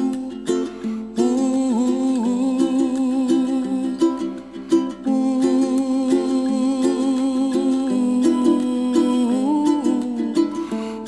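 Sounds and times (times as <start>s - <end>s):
plucked strings melody: 0.0s - 11.0s.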